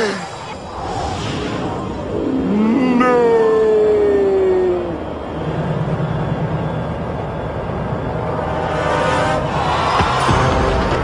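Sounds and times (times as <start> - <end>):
long falling cry: 2.0 - 5.4.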